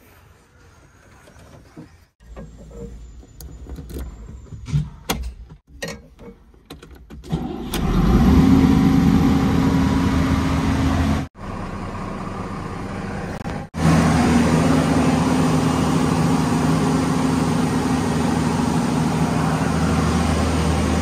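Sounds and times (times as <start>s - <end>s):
diesel engine starting and running: 7.0s - 21.0s.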